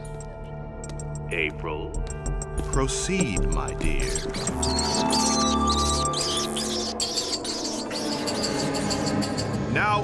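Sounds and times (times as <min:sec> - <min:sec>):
background music: 0:00.0 - 0:10.0
rats squeaking: 0:02.6 - 0:09.7.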